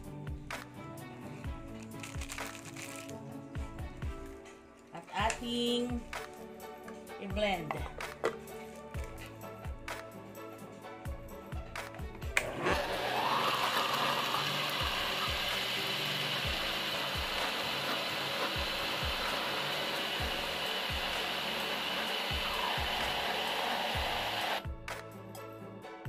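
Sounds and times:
blender motor running: 12.3 - 24.6.

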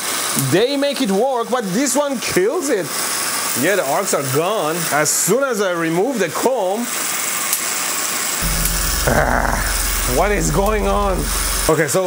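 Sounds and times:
generator belt hissing: 8.4 - 11.7
low steady hum: 8.4 - 11.7.

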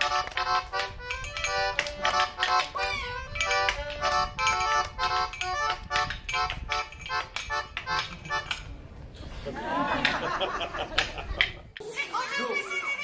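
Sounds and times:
accordion playing bouncy chords: 0.0 - 8.6.

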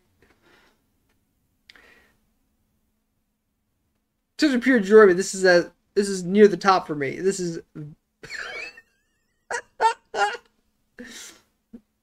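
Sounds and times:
man laughing: 8.2 - 8.9, 9.5 - 10.5.

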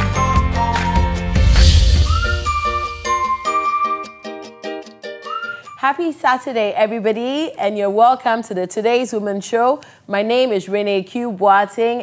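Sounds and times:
bass line: 0.0 - 3.6
rising whistle-like slide: 0.2 - 4.4.

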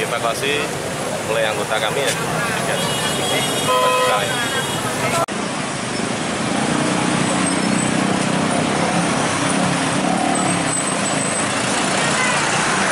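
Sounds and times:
road traffic roar: 0.0 - 12.9.

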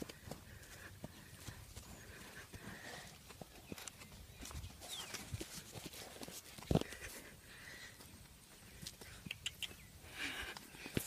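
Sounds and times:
faint horse hoofbeats: 0.0 - 11.0.

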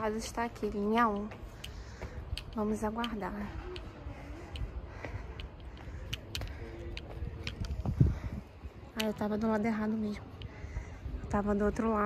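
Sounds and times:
wind buffeting microphone: 0.0 - 12.0
light clicks: 1.1 - 7.8.

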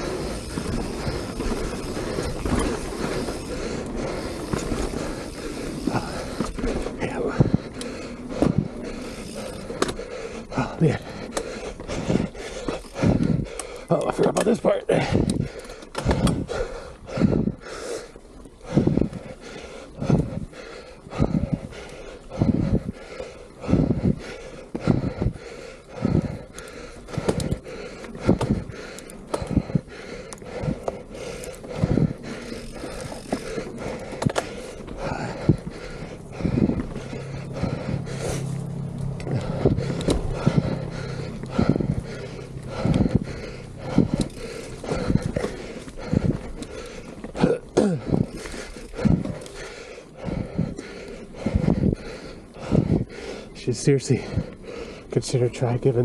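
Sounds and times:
tyre and wind noise: 0.0 - 11.0, 18.4 - 19.4, 20.0 - 25.4, 26.0 - 53.3
person breathing hard: 0.0 - 56.0
steady low hum: 0.0 - 56.0.

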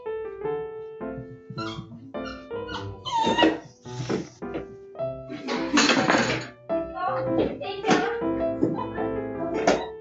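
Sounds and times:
background piano music: 0.0 - 10.0.

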